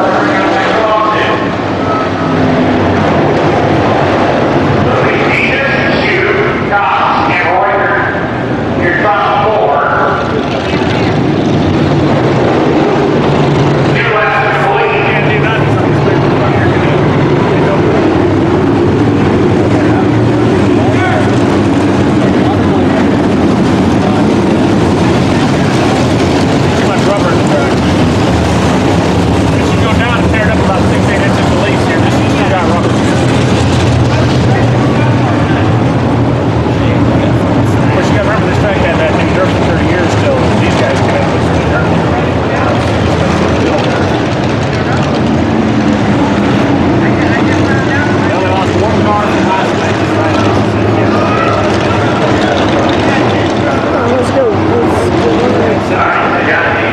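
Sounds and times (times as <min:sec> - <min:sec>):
race car engines droning: 0:00.0 - 0:56.9.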